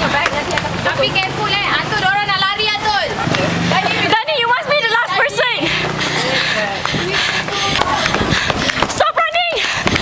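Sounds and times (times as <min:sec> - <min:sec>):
street noise: 0:00.0 - 0:10.0
teenagers chattering: 0:00.0 - 0:10.0.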